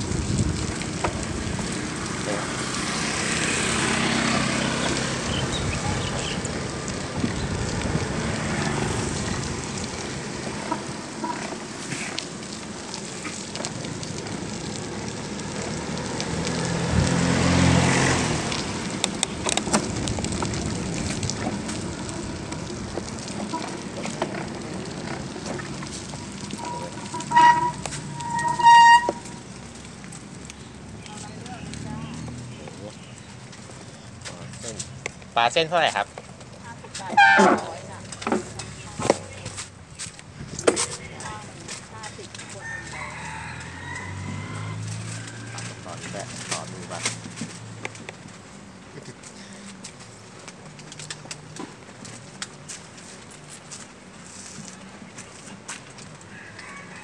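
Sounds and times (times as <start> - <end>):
wind on microphone: 0.0 - 1.8, 5.3 - 8.3
motor vehicle passing: 0.0 - 57.0
street traffic: 0.0 - 57.0
horn toots: 26.6 - 29.4, 37.0 - 37.8.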